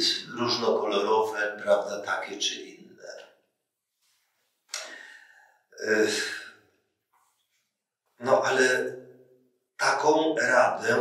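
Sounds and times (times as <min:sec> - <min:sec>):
man's breathy exhale: 0:04.8 - 0:05.5
man breathing in: 0:04.8 - 0:05.6.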